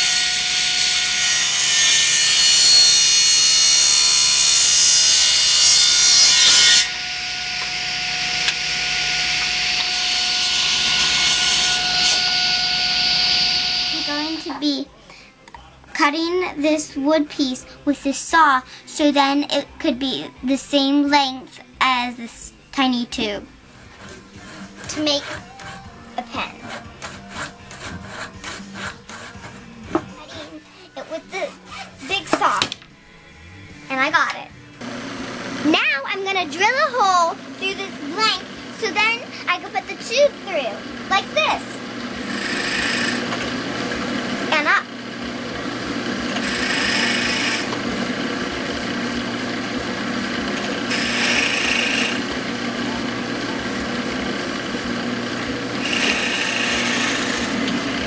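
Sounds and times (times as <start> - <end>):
drill press motor running: 6.8 - 14.5, 34.8 - 35.7, 38.4 - 58.0
hand saw cutting wood: 9.4 - 14.5, 23.2 - 32.7, 37.0 - 44.8, 46.0 - 58.0.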